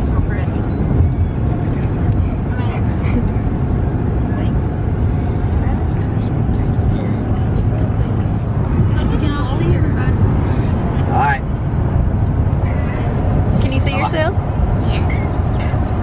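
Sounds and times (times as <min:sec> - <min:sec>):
faint voices: 0:00.0 - 0:11.6, 0:12.3 - 0:16.0
road and engine rumble: 0:00.0 - 0:16.0.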